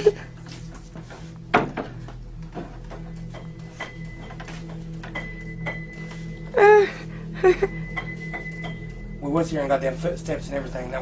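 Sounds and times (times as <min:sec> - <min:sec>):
steady low hum: 0:00.0 - 0:11.0
piano keys clicking and tapping: 0:01.0 - 0:06.3, 0:07.9 - 0:09.1.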